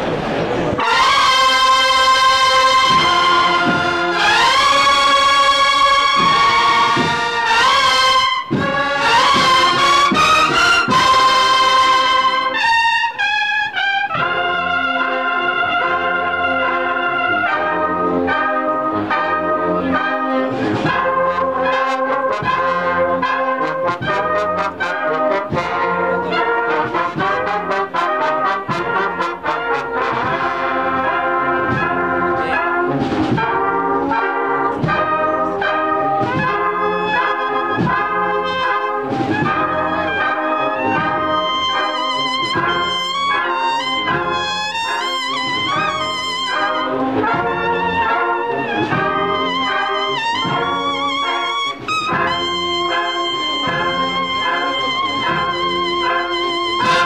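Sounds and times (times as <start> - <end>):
brass band playing a march: 0.0 - 57.0.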